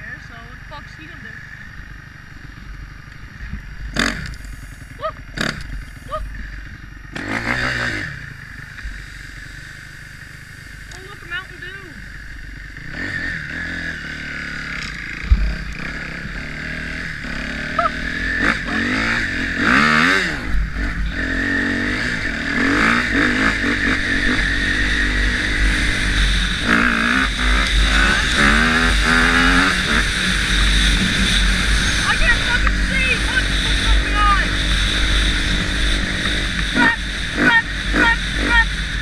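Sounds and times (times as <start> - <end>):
dirt bike engine revving: 0.0 - 39.0.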